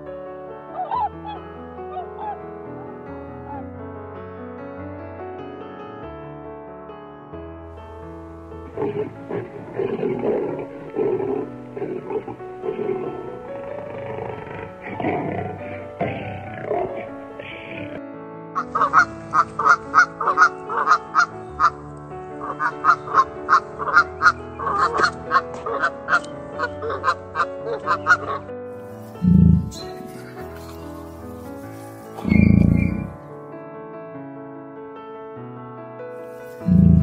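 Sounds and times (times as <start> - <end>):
background music: 0.0 - 37.0
geese honking: 0.8 - 3.6, 18.6 - 21.8, 22.4 - 33.2
low irregular animal calls: 0.8 - 3.6, 8.6 - 18.0, 29.0 - 33.3, 36.5 - 37.0.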